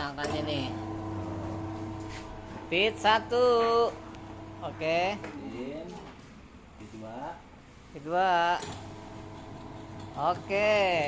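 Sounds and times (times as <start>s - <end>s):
mixer motor humming: 0.0s - 5.3s, 8.7s - 11.0s
person speaking: 2.6s - 6.2s.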